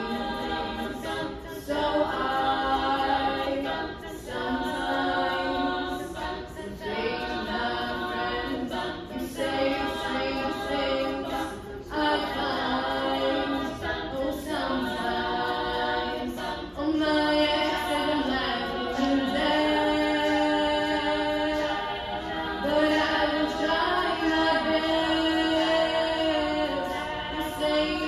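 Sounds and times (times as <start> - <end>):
female a cappella group singing: 0.0 - 28.0.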